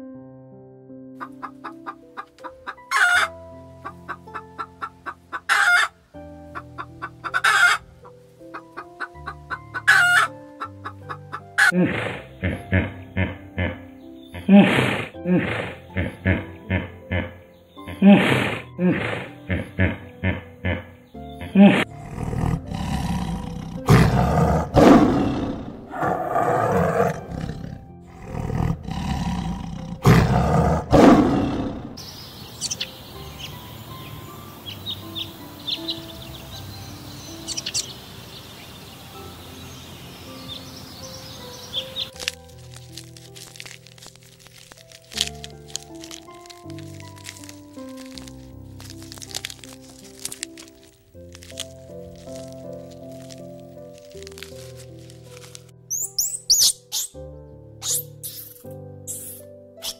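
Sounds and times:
gentle piano music: 0.0 - 59.9
tiger roaring and growling: 21.5 - 32.1
short clicking animal calls: 37.5 - 37.9, 55.9 - 57.2, 57.8 - 59.9
loud short squawks: 55.9 - 57.2, 57.8 - 59.9.

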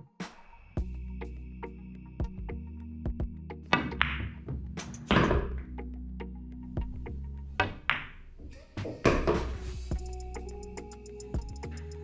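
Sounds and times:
background music: 0.0 - 12.0
pool balls clacking: 3.8 - 5.6, 7.6 - 8.3, 9.1 - 9.6.

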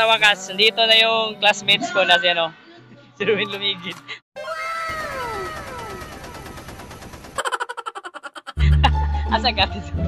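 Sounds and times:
rising and sliding comic call: 4.4 - 6.5.

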